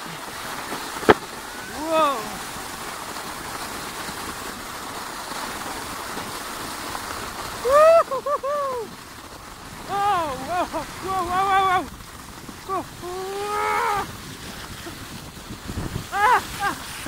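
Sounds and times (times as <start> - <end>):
sled hissing on snow: 0.0 - 17.0
person whooping: 1.5 - 2.5, 7.6 - 9.0, 9.8 - 11.9, 12.7 - 14.1, 16.0 - 17.0.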